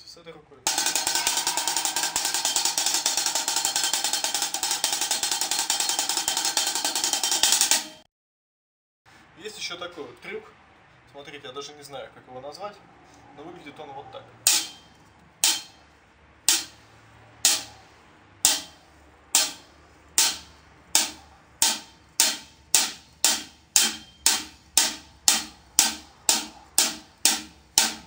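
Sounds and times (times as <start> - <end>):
drumstick hits on drum: 0.7 - 8.0, 16.5 - 16.8, 17.4 - 17.7, 19.4 - 28.0.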